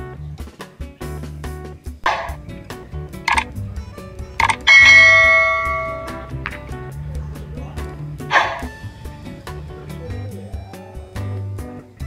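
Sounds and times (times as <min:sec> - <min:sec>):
background music: 0:00.0 - 0:12.0
short clicks: 0:03.3 - 0:03.5, 0:04.4 - 0:04.6
bell ding: 0:04.4 - 0:06.4.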